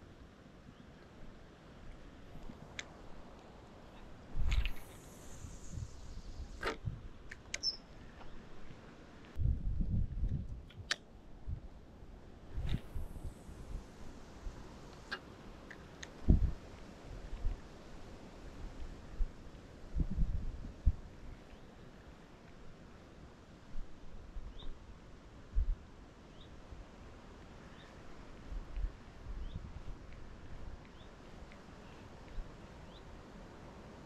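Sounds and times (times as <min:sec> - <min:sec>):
wind gusts on microphone: 0:01.8 - 0:21.5, 0:23.7 - 0:26.0, 0:26.6 - 0:34.0
high bird chirp: 0:07.6 - 0:07.9.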